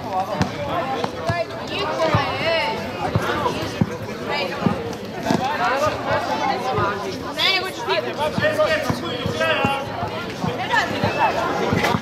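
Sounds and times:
basketball bouncing on court: 0.3 - 4.0, 8.3 - 12.0.

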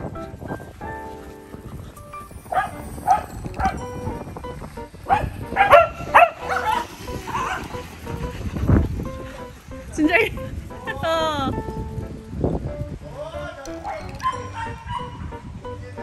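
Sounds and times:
dogs barking and yipping: 0.0 - 11.0, 13.7 - 15.5
background music: 0.0 - 16.0.

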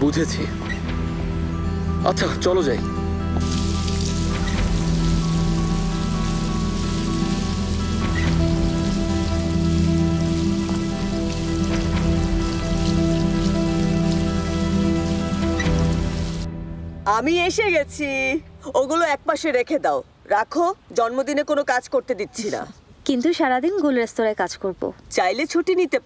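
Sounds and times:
background music with held notes: 0.0 - 19.3
hose spraying water onto gravel: 3.4 - 16.4.

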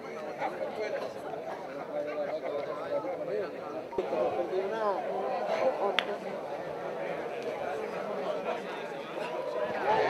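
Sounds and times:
crowd murmur of voices: 0.0 - 10.0.

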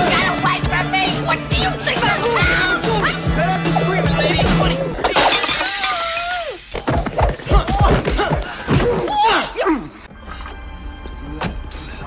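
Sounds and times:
music: 0.0 - 12.0
glass breaking: 5.0 - 7.4.

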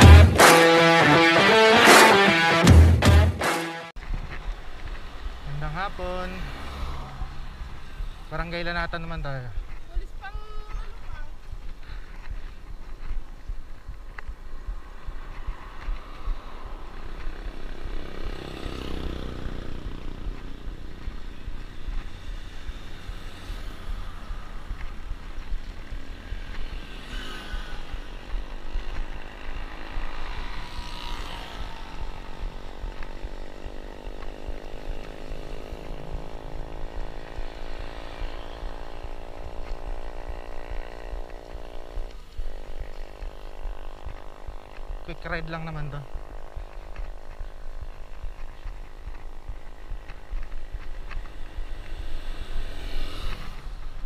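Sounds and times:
road traffic passing: 0.0 - 54.0
vehicle engine drone: 0.0 - 54.0
wind rumbling on microphone: 9.5 - 18.2.

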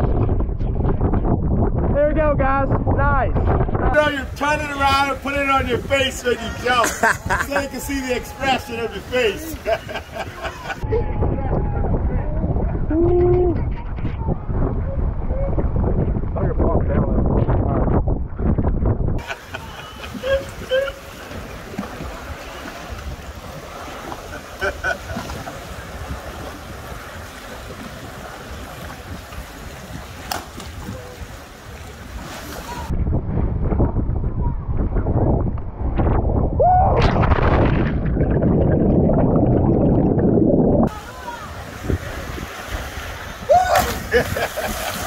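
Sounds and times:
wind on microphone: 0.0 - 45.0
water lapping around boat: 4.0 - 10.8, 19.2 - 32.9, 40.9 - 45.0.

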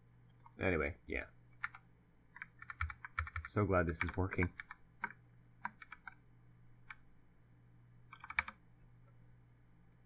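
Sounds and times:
computer keyboard keystrokes: 1.6 - 6.2, 8.1 - 8.6.

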